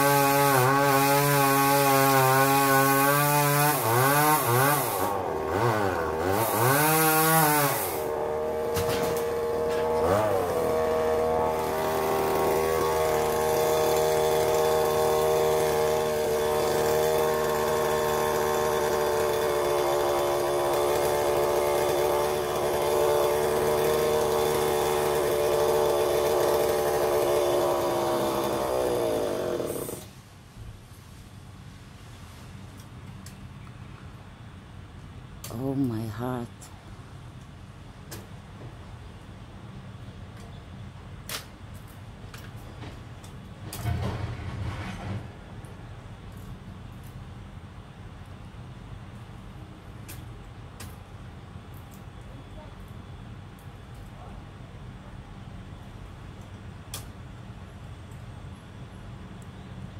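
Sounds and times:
two-stroke chainsaw revving: 0.0s - 30.1s.

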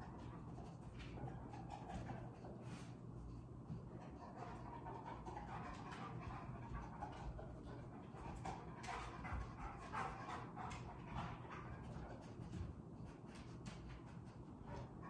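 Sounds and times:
dog panting: 0.0s - 15.0s.

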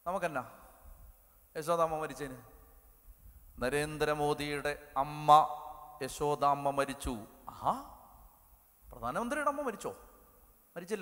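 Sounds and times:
man speaking into a microphone: 0.0s - 0.7s, 1.5s - 2.6s, 3.6s - 8.1s, 8.9s - 11.0s.

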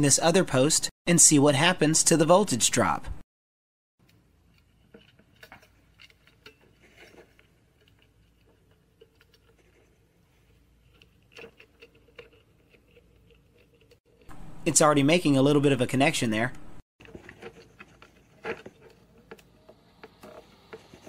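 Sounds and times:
faint clicks and rustles of handling: 4.0s - 14.3s, 17.0s - 21.0s.

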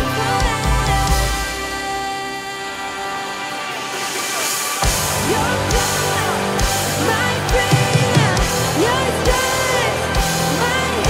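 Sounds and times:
woman singing: 0.0s - 4.0s, 5.1s - 11.0s
drum kit: 0.0s - 11.0s
electric guitar: 0.0s - 11.0s.

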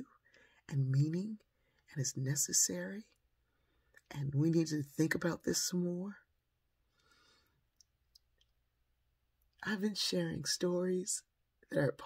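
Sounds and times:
faint breath: 6.9s - 7.7s.

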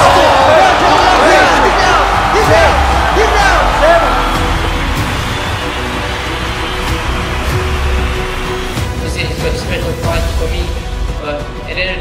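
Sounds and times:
cinematic music with heavy bass: 0.0s - 12.0s.

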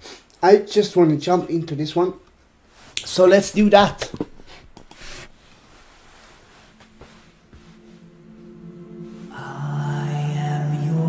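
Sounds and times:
faint steady low note: 6.0s - 11.0s.

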